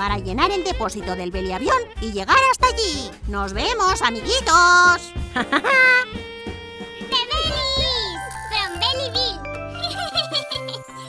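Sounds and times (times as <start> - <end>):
children's music jingle: 0.0 - 5.1, 7.1 - 11.0
high-pitched voice: 7.1 - 11.0.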